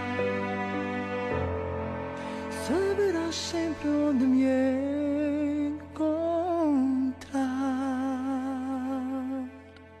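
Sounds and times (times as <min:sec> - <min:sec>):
sustained backing chord: 0:00.0 - 0:10.0.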